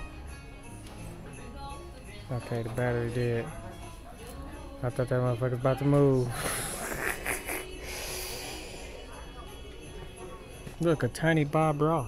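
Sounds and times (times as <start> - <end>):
shop background noise: 0.0 - 12.0.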